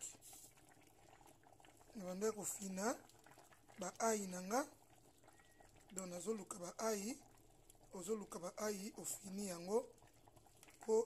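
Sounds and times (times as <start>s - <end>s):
soup bubbling in a pot: 0.0s - 11.0s.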